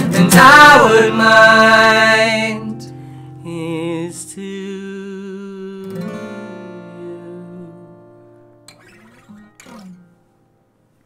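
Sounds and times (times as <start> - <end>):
acoustic guitar chord strummed: 0.0 - 11.0
guitar handling noises: 8.7 - 10.3.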